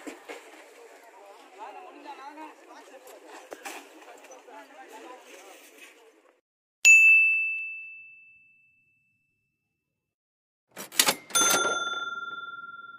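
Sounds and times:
bright ding: 6.9s - 9.4s, 11.2s - 12.9s
lower bell ding: 6.9s - 9.6s, 11.2s - 12.9s.

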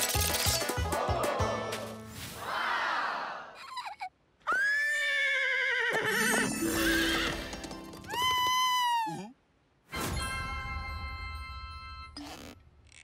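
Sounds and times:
background music: 0.0s - 2.3s, 6.2s - 8.2s
cartoon pony whinnying: 4.5s - 7.5s.

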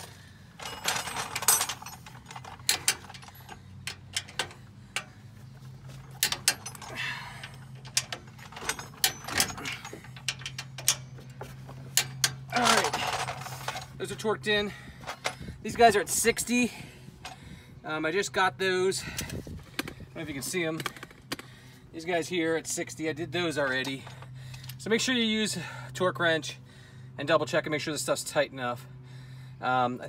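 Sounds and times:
low steady hum: 0.0s - 30.0s
wrench clicking on bolts: 0.8s - 5.1s, 6.1s - 7.0s, 7.7s - 11.1s.

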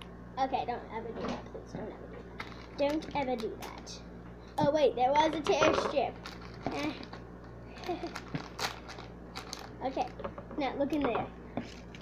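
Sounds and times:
foil packet crinkling and tearing: 2.4s - 4.0s, 6.2s - 10.2s
girl laughing: 7.7s - 8.4s.

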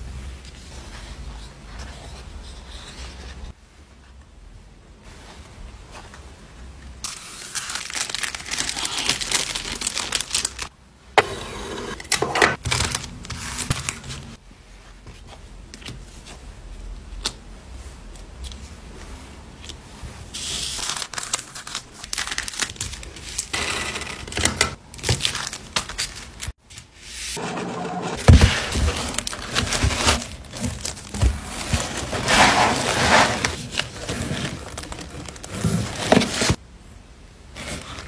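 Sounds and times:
plastic packaging crinkling: 7.1s - 10.7s, 12.5s - 14.4s, 20.7s - 23.5s, 24.9s - 26.5s, 28.3s - 36.6s
cardboard rustling: 27.4s - 36.6s.

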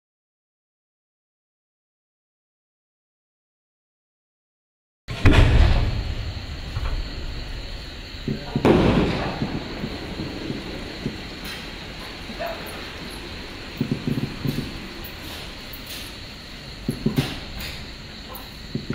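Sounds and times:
firework launch thump: 5.1s - 12.2s, 13.7s - 16.2s, 16.8s - 18.0s
firework burst boom: 5.1s - 18.0s.

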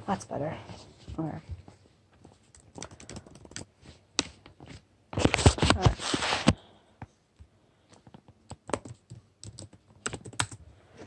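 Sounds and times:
typing on laptop keyboard: 2.4s - 4.3s, 7.9s - 10.6s.

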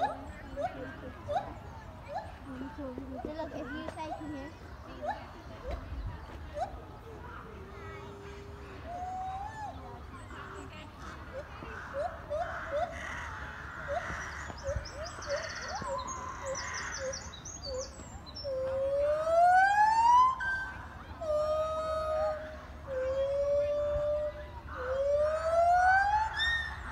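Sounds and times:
gibbons hooting and whooping: 0.0s - 5.9s, 8.0s - 26.9s.

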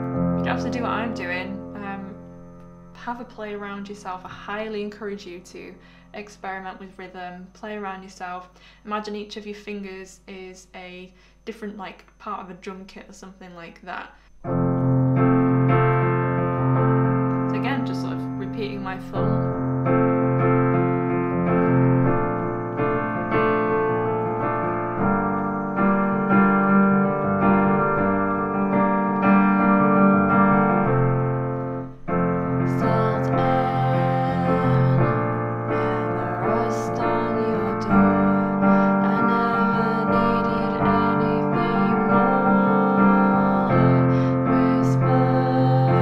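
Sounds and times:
piano playing chords: 0.0s - 5.7s, 14.3s - 46.0s.

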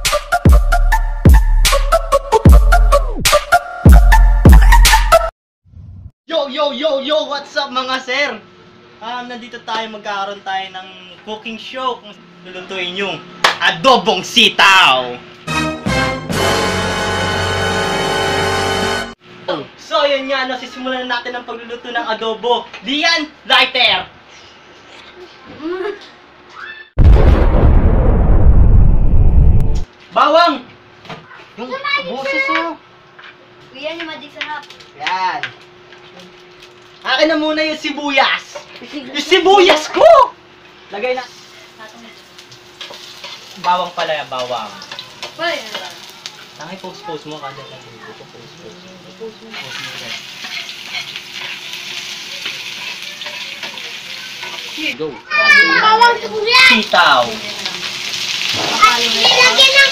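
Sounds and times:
gas igniting whoosh: 27.0s - 29.9s
onions sizzling in a frying pan: 40.6s - 55.1s, 55.8s - 59.9s
stirring in a pan: 41.3s - 46.6s, 49.4s - 55.0s
gas flame roaring: 56.2s - 59.9s.

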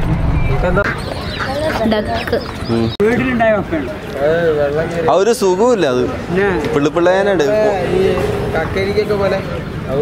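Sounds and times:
ducks and chicks calling: 0.4s - 4.4s
people talking: 0.6s - 10.0s.

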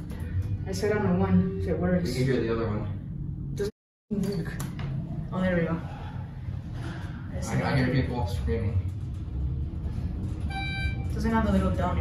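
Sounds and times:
elevator low rumble: 0.0s - 3.7s, 4.4s - 12.0s.

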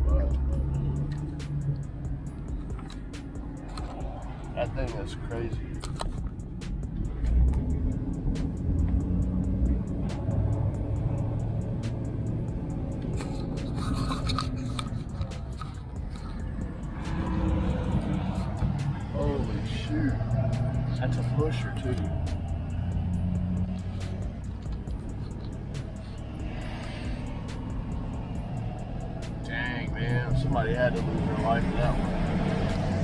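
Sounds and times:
diesel engine drone: 0.0s - 33.0s
low rumble inside truck cab: 0.0s - 33.0s
music playing: 0.0s - 33.0s
scattered clicks: 5.7s - 7.7s
short clicks and rubbing: 13.0s - 16.3s.

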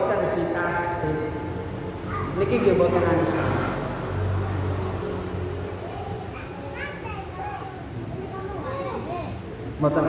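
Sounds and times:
children's voices: 1.7s - 9.8s.

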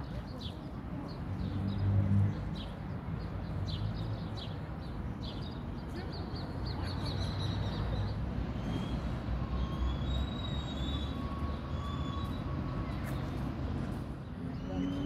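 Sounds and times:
birds chirping: 0.0s - 15.0s
low rumble of traffic: 0.0s - 15.0s.

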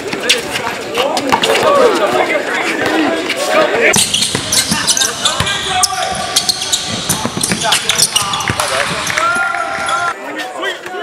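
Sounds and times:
basketball bouncing on court: 3.9s - 10.0s.

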